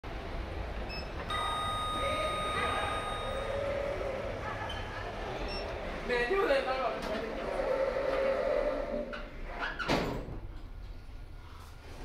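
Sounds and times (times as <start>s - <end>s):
lift arrival chime: 0.9s - 3.8s.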